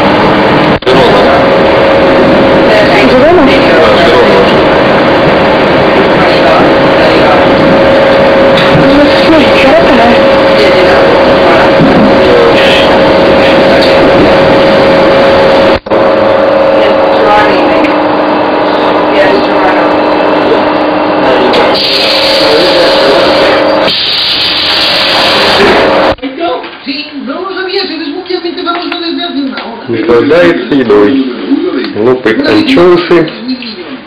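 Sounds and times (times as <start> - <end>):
train running rumble: 0.0 - 16.0
humming whine: 0.0 - 26.2.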